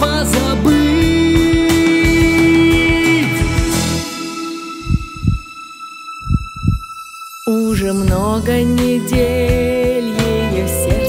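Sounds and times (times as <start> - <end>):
steady high held tone: 3.7 - 7.6
heartbeat thumps: 4.8 - 5.5, 6.2 - 6.9.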